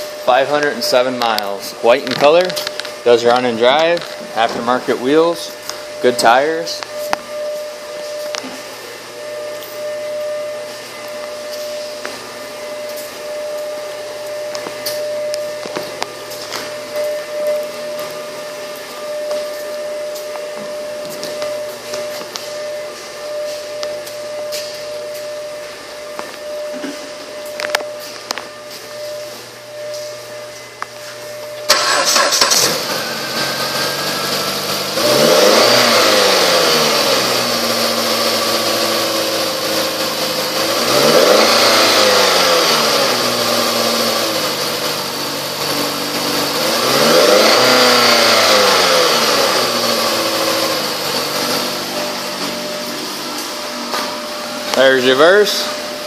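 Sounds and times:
steady hum: 0:00.0 - 0:56.0
car engine starting and revving: 0:31.7 - 0:54.7.

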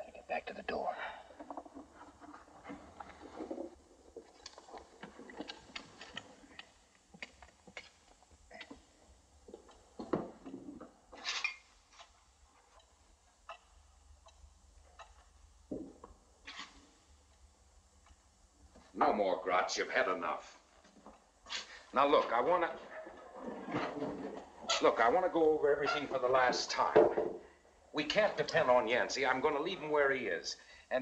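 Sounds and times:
pendulum clock ticking: 0:12.3 - 0:15.7.

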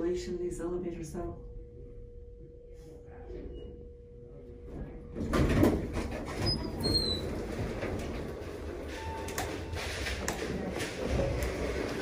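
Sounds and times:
wheelchair wheels rumbling: 0:05.2 - 0:12.0.

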